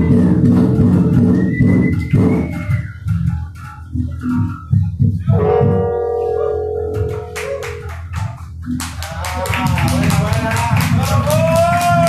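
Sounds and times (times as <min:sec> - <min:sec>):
band playing electric guitars: 0:00.0 - 0:12.0.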